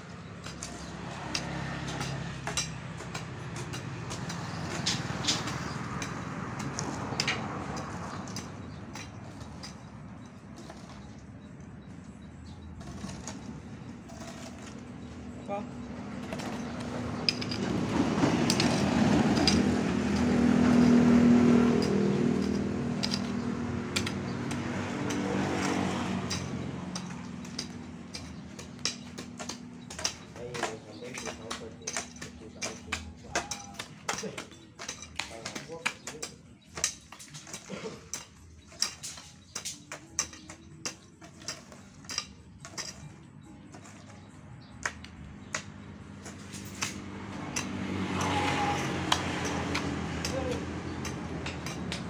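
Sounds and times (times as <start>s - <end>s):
vehicle engine running: 0.0s - 52.0s
hoe blades chopping soil: 0.3s - 11.3s, 12.8s - 44.2s, 44.9s - 52.0s.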